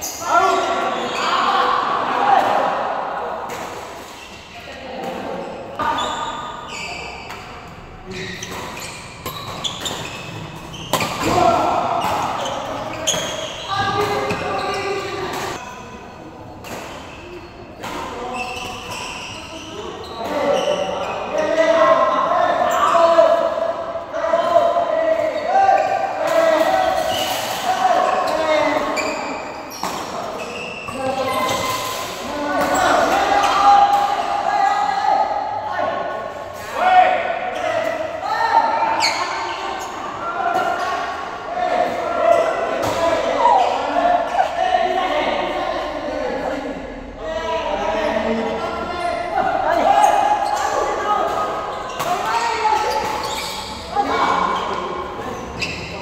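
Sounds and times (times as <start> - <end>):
voices talking and calling out: 0.0 - 56.0.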